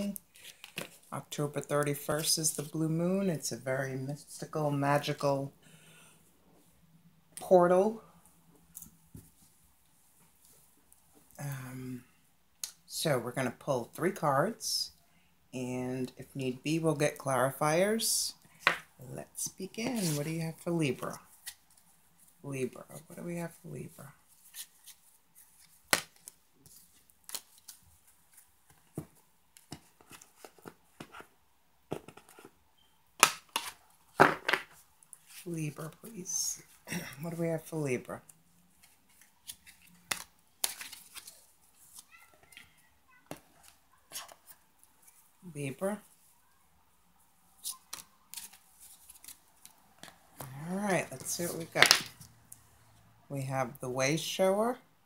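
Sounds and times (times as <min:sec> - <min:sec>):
cards shuffling and flicking: 0:19.8 - 0:20.4, 0:38.8 - 0:42.6, 0:47.6 - 0:52.3
cards slapping on table: 0:51.8 - 0:52.2.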